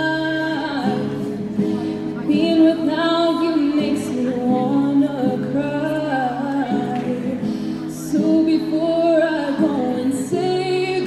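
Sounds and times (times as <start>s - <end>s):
woman singing slow song: 0.0s - 11.0s
singer breathing: 7.4s - 7.9s.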